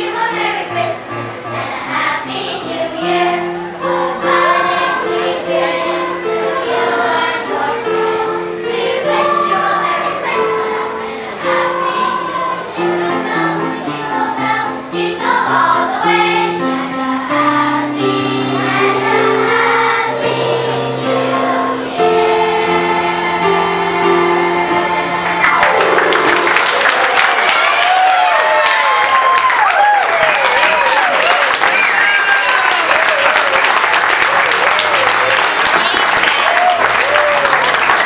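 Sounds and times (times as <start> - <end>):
children's choir singing: 0.0 - 29.6, 30.3 - 38.0.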